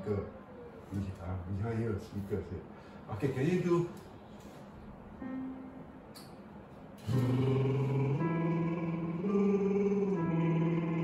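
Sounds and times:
electronic keyboard chords: 5.2 - 6.2, 7.0 - 11.0.

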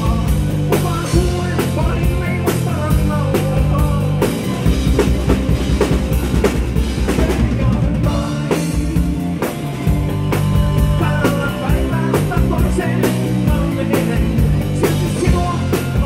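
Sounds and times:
bass guitar: 0.0 - 16.0
drum kit beat: 0.0 - 16.0
electric guitar: 0.0 - 16.0
rock band playing: 0.0 - 16.0.

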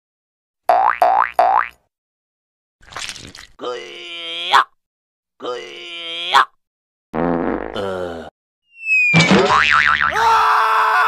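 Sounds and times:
wavering pitched cry: 8.7 - 9.2
falling whistle: 8.7 - 9.3
rising boing tones: 9.2 - 10.2.

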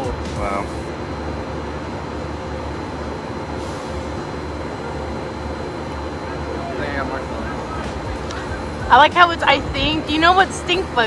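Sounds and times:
steady low rumble with hiss: 0.0 - 11.0.

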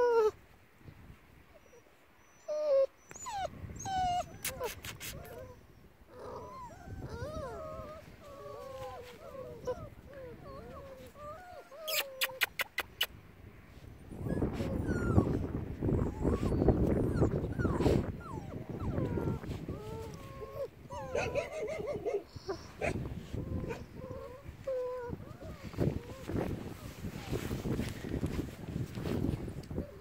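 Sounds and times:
puppies whimpering and yipping: 1.6 - 13.1, 14.2 - 28.0.

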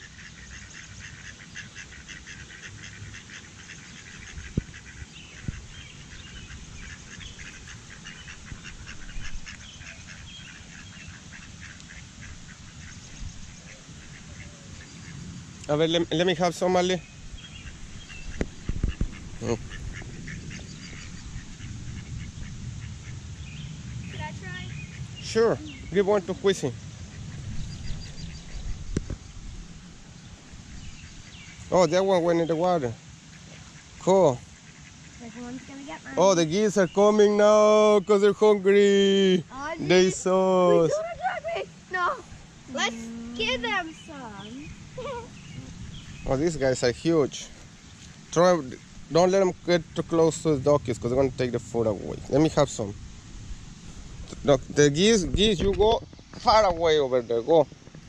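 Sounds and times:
ducks quacking: 0.0 - 29.4, 30.3 - 53.0, 54.2 - 57.7
wind rumble on microphone: 4.1 - 16.1, 17.0 - 31.7, 43.4 - 46.7, 48.8 - 58.0
bird chirps: 23.4 - 29.3, 42.8 - 46.4.

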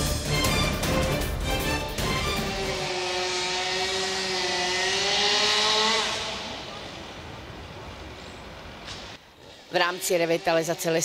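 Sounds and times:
chainsaw running at high revs: 2.5 - 7.0, 9.9 - 11.0.

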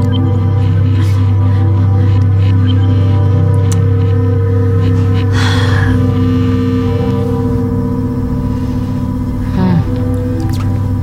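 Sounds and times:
electronic drone of low tones: 0.0 - 11.0.

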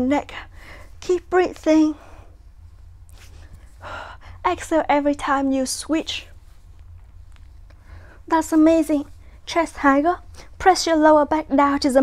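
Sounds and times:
low steady hum: 0.0 - 12.0
woman breathing while exercising: 0.4 - 1.0, 2.0 - 4.4, 7.7 - 8.3.

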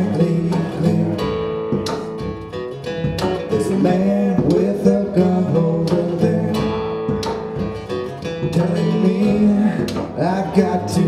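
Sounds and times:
strummed acoustic guitar: 0.0 - 11.0
upright bass: 0.0 - 11.0.

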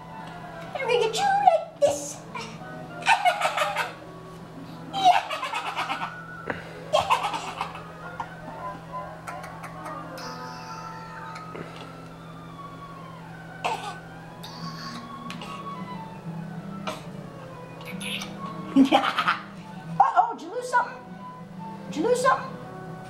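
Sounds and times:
music from a television: 2.2 - 5.1, 7.8 - 13.4, 14.2 - 20.1, 21.0 - 23.0
high-pitched giggling laughter: 3.0 - 4.0, 4.9 - 6.2, 6.9 - 8.0, 18.0 - 19.5.

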